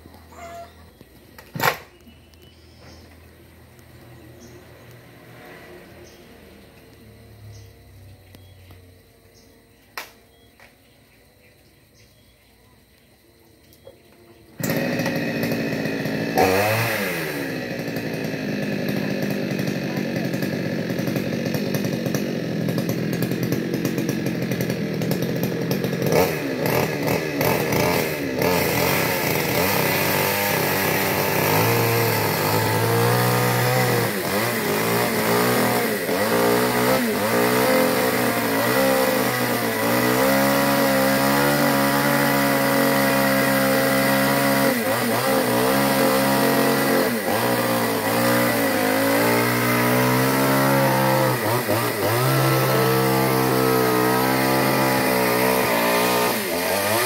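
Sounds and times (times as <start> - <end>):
chainsaw revving: 0.0 - 2.0, 3.0 - 8.0, 14.6 - 57.0.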